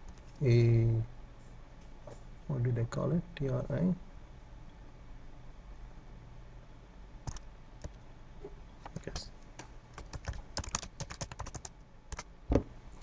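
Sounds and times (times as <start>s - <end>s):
keyboard typing: 7.3s - 8.0s, 8.9s - 12.3s.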